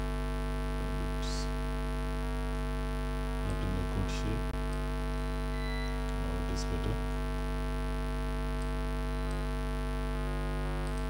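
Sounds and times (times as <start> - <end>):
steady hum of held tones: 0.0 - 11.0.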